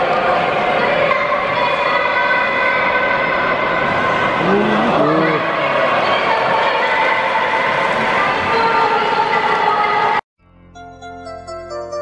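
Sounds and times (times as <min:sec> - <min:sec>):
stadium crowd din: 0:00.0 - 0:10.2.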